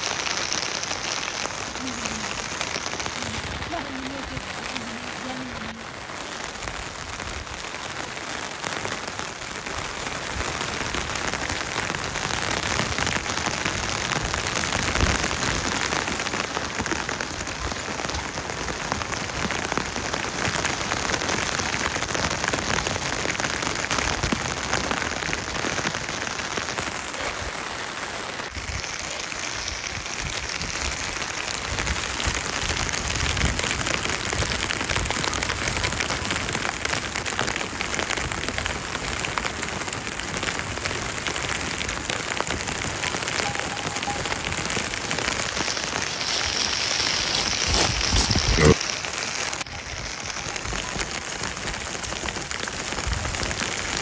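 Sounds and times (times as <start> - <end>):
steady rain falling: 0.0 - 54.0.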